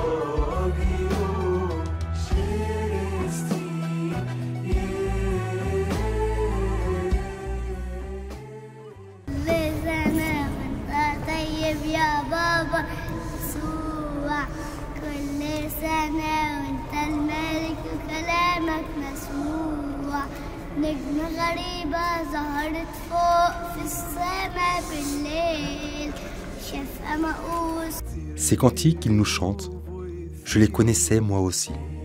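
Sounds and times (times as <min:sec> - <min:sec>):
boy singing a hymn: 0:09.3 - 0:28.6.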